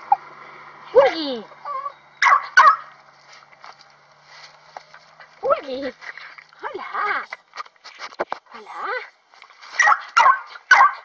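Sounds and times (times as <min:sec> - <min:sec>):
small dog barking: 0:01.7 - 0:02.9, 0:09.8 - 0:11.0.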